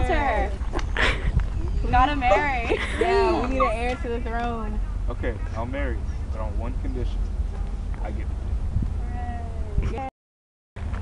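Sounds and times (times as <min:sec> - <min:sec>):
wind rumbling on microphone: 0:00.0 - 0:10.1.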